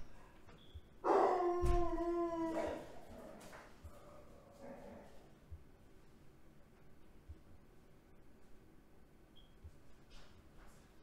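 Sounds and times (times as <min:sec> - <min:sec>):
dog howling: 0:01.0 - 0:05.2.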